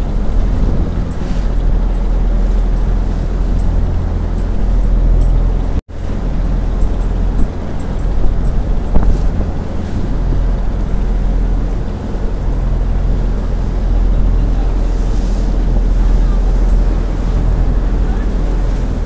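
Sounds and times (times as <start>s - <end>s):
boat motor running: 0.0s - 19.0s
water rushing along hull: 0.0s - 19.0s
wind on microphone: 0.0s - 19.0s.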